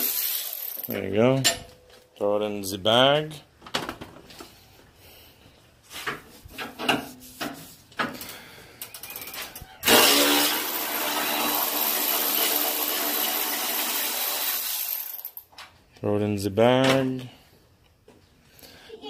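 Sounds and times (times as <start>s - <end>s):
air ratchet running: 0.0s - 0.9s, 8.9s - 15.4s.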